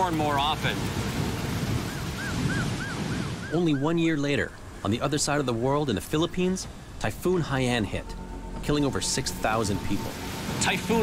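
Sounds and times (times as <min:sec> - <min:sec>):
strong wind buffeting microphone: 0:00.0 - 0:03.6.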